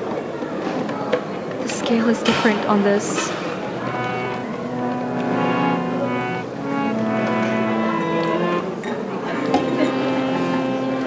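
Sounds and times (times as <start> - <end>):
low musical drone: 3.1 - 11.0.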